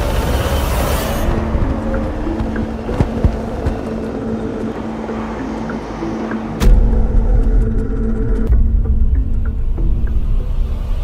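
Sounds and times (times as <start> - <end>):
sustained synth notes: 0.2 - 10.9.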